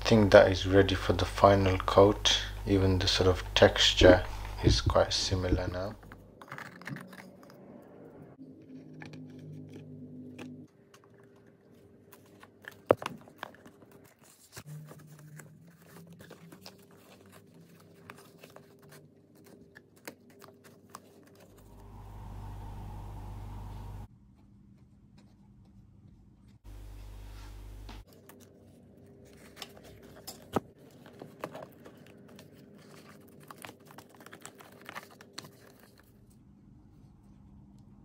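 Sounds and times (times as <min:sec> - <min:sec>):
steady low hum: 0:00.0 - 0:06.4, 0:21.5 - 0:24.1, 0:26.7 - 0:28.0.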